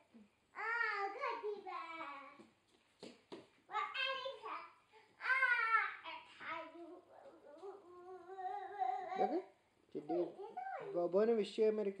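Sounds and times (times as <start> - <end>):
child speaking: 0.6 - 2.4, 3.7 - 9.4, 10.1 - 11.0
child humming: 7.5 - 9.5.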